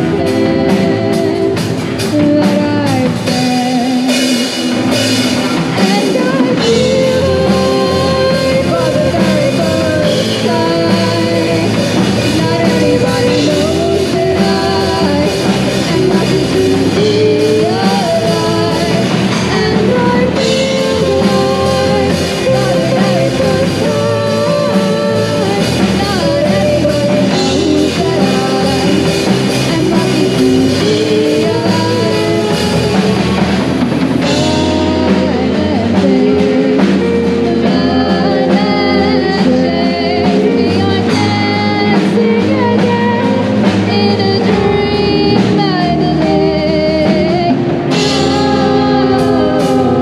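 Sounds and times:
backing singers: 0.0s - 50.0s
bass guitar: 0.0s - 50.0s
drum kit: 0.0s - 50.0s
electric guitar: 0.0s - 50.0s
keyboard: 0.0s - 50.0s
woman singing lead: 0.0s - 50.0s.

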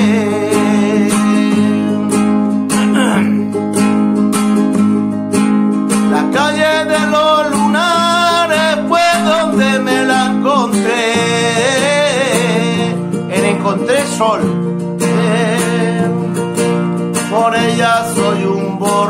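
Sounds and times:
man singing: 0.0s - 3.6s, 5.9s - 19.0s
nylon-string guitar strummed: 0.0s - 19.0s.

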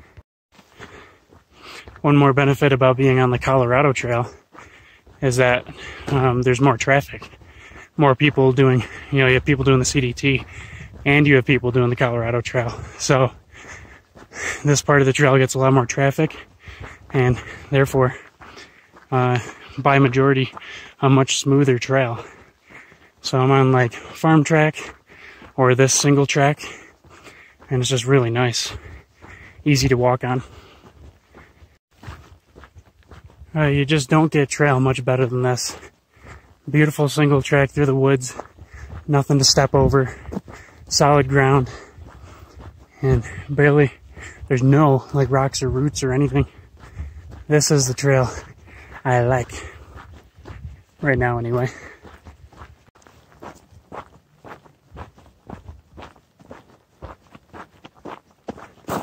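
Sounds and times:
footsteps on gravel trail: 0.0s - 59.0s.

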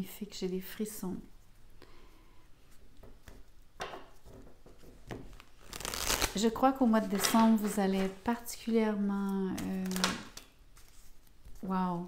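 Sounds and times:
cards tapping and rubbing on table: 3.0s - 5.4s
card shuffling: 5.3s - 8.3s, 9.5s - 11.7s.

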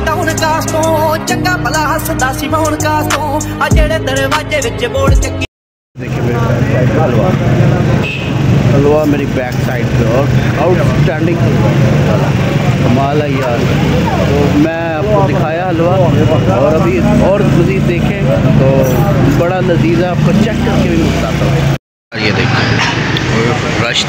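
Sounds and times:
busy street noise: 0.0s - 24.0s
man talking: 6.0s - 8.0s, 8.7s - 22.6s
steady engine hum: 6.0s - 24.0s.

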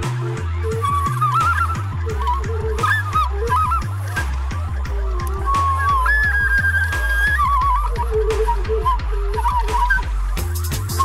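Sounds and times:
drum and bass beat: 0.0s - 11.0s
flute melody with trills: 0.0s - 11.0s.

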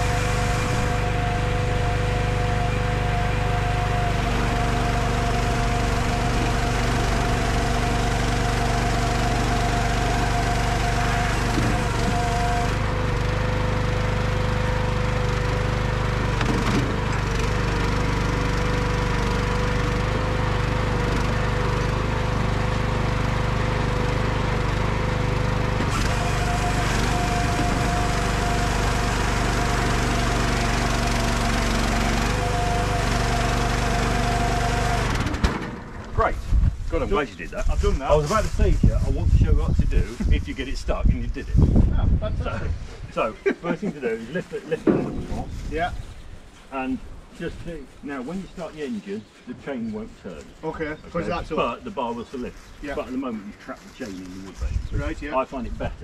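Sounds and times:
firewood processor engine running: 0.0s - 41.6s, 42.6s - 47.6s
chainsaw bar cutting log: 3.7s - 12.9s, 16.2s - 17.9s, 25.7s - 35.6s, 44.8s - 45.5s.

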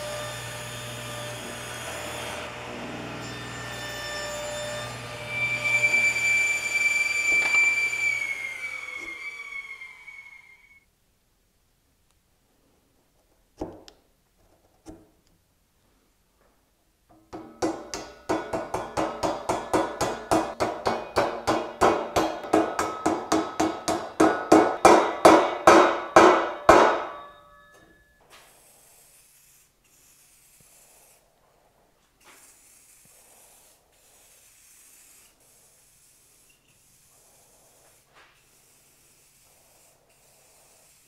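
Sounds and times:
hammer blows on steel frame: 17.4s - 28.0s
aerosol spray paint hissing: 28.5s - 31.3s, 32.2s - 41.0s.

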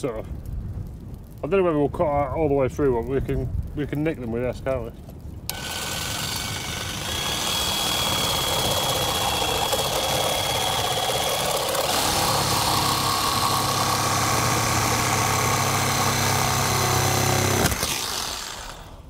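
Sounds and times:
jigsaw sawing through wood: 5.5s - 19.0s.

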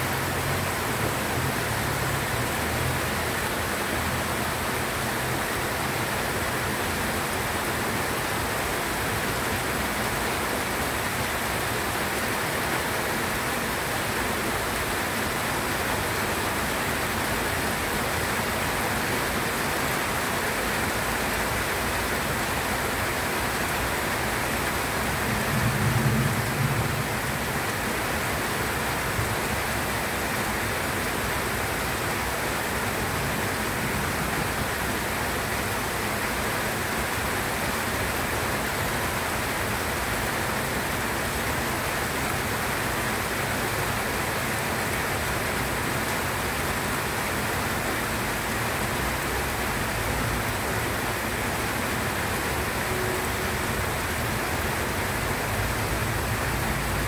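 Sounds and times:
rain falling on leaves: 0.0s - 57.0s.

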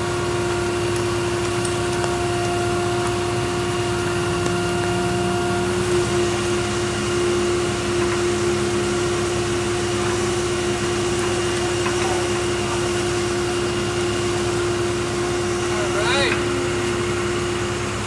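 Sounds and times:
engine idling: 0.0s - 18.0s.

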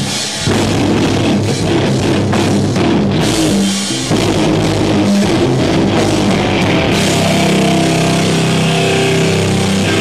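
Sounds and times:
drumming: 0.0s - 10.0s
distorted electric guitar chord: 3.2s - 10.0s.

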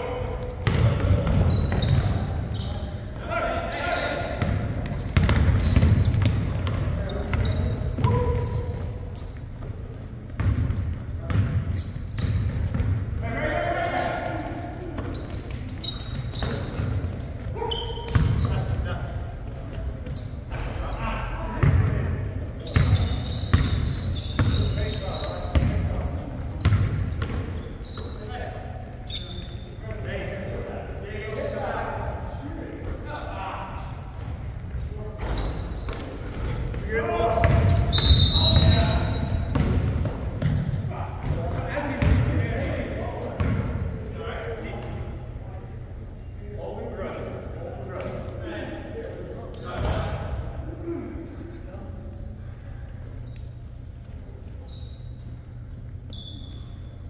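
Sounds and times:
shoe squeal: 0.0s - 21.4s, 22.1s - 43.0s, 46.2s - 46.9s, 47.8s - 48.5s, 49.4s - 50.1s, 50.7s - 51.4s, 53.0s - 57.0s.

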